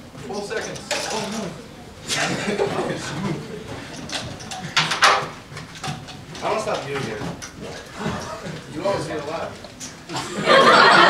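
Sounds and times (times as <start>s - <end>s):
indistinct chatter of students: 0.0s - 11.0s.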